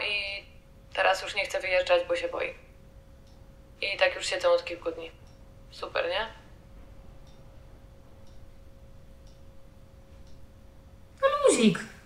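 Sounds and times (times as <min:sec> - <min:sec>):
faint steady hum: 0:00.0 - 0:12.0
soft ticking: 0:01.9 - 0:11.2.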